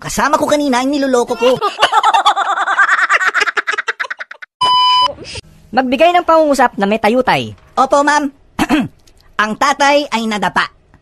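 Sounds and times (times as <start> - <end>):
people laughing: 1.4 - 4.5
test tone beep: 4.6 - 5.3.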